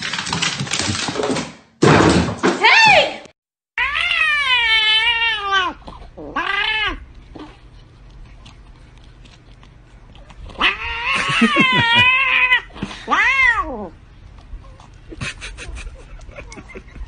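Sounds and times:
cat meowing: 3.8 - 7.0, 10.5 - 13.9.

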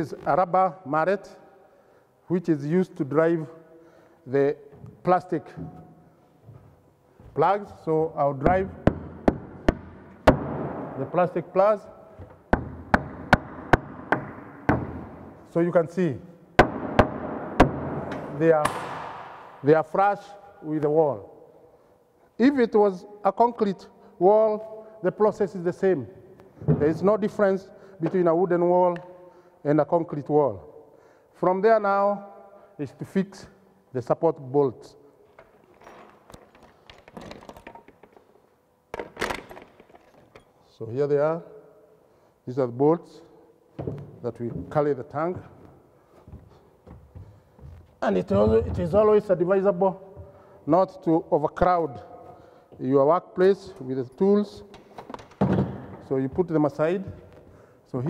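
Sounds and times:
rubber mallet knocking plastic plugs: 12.2 - 15.1, 16.6 - 19.0.

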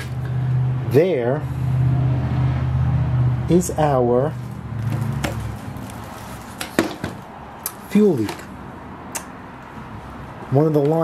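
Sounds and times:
handling knocks: 6.6 - 7.2.

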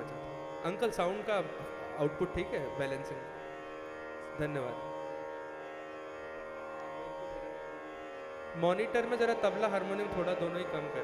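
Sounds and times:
tanpura drone: 0.0 - 11.0.

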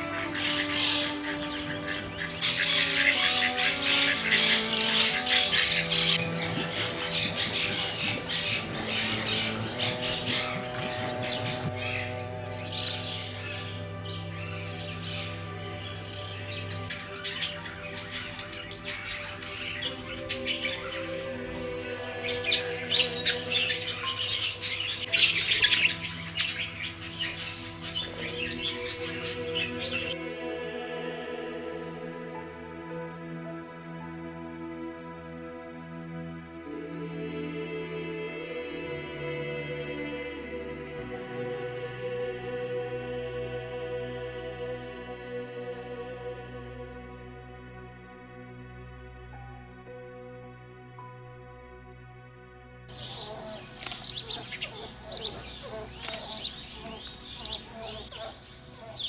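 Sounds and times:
birds chirping and squawking: 0.0 - 31.2, 52.9 - 59.0
music of sustained notes: 0.0 - 59.0.

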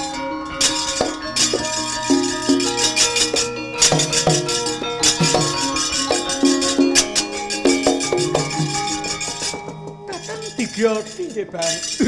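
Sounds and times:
gamelan metallophone tones: 0.0 - 12.0
sharp metallic clashes: 0.0 - 12.0.

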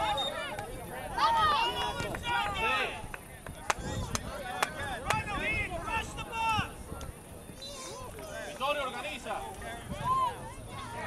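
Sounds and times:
distant shouting voices: 0.0 - 11.0.

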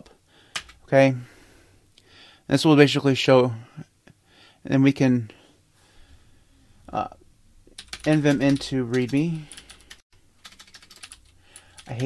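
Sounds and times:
computer keyboard typing: 0.5 - 0.8, 7.8 - 12.0.

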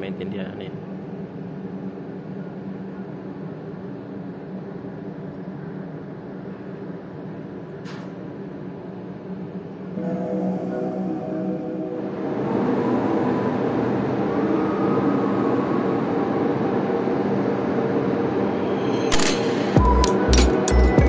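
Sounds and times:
ship machinery drone: 0.0 - 21.0.

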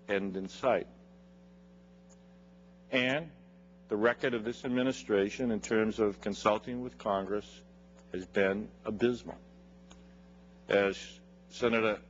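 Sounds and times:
man speaking: 0.0 - 1.0, 2.9 - 9.5, 10.7 - 12.0
electrical mains hum: 0.0 - 12.0.

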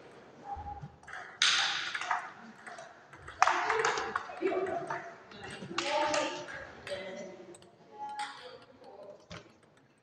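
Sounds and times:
table tennis ball hits and bounces: 0.8 - 7.0.

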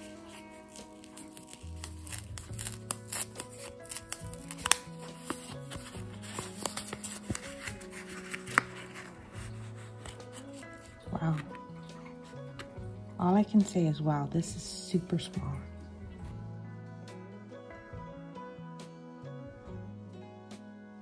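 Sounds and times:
paper packet crinkling: 0.0 - 11.6
background music: 0.0 - 21.0.

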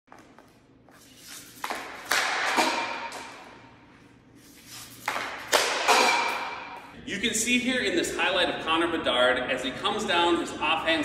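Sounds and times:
puck scraping on floor: 0.2 - 3.5, 4.4 - 6.5
hockey stick knocking puck: 1.6 - 3.5, 5.0 - 6.7.

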